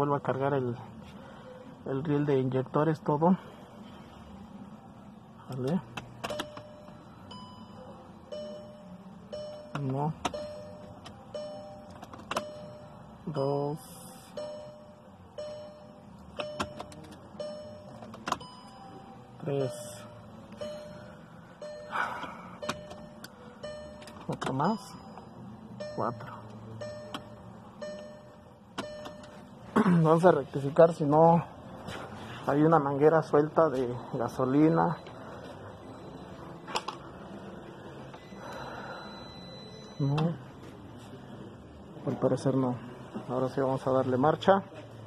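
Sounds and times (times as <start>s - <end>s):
ignition key clicks: 5.5s - 6.8s, 9.6s - 12.7s, 16.2s - 18.8s, 22.6s - 24.8s, 28.7s - 29.4s
instrument cluster beeps: 6.3s - 29.8s, 34.0s - 36.7s, 38.1s - 40.6s
fuel pump whine: 33.7s - 41.8s.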